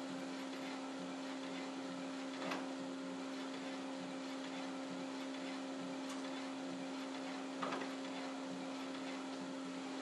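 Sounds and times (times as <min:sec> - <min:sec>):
label printer humming: 0:00.0 - 0:10.0.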